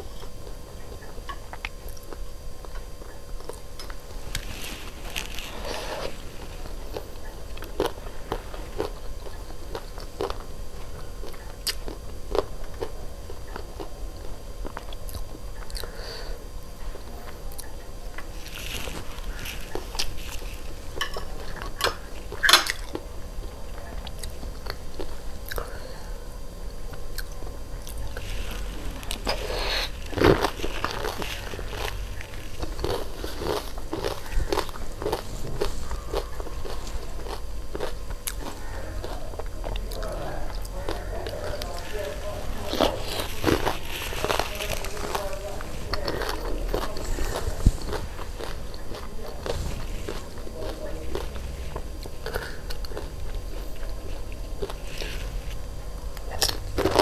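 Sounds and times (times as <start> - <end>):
close chewing with crunches: 0.0 - 57.0
swallowing: 14.6 - 16.4, 27.0 - 55.4
wet mouth sounds: 26.9 - 55.4.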